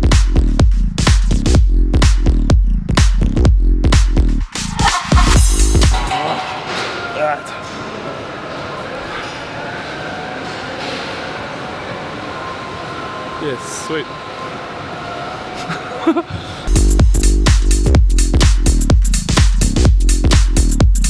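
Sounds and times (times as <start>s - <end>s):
gym background din: 4.4s - 8.9s
distant indistinct voices: 6.1s - 15.8s.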